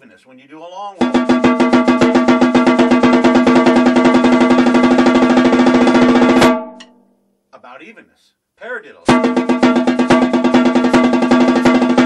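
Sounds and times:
snare drum roll: 1.0 - 6.8, 9.1 - 12.0.

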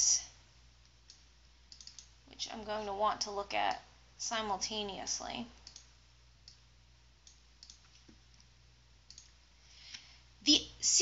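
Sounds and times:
low steady hum: 0.0 - 11.0
computer mouse clicks: 0.8 - 2.2, 5.6 - 6.6, 7.2 - 8.5, 9.1 - 9.4.

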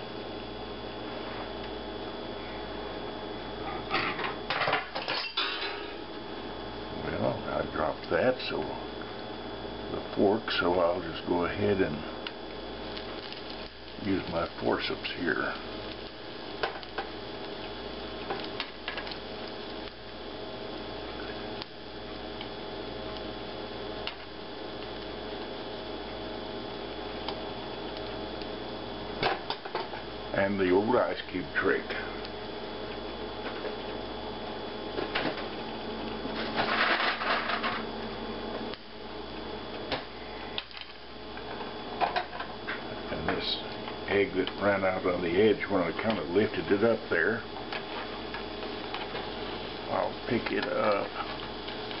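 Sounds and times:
steady background hum: 0.0 - 52.0
food sizzling in skillet: 12.3 - 28.4.

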